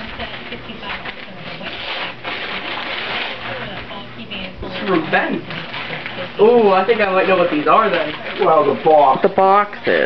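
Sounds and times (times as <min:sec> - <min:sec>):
paper tearing and crinkling: 0:00.0 - 0:10.0.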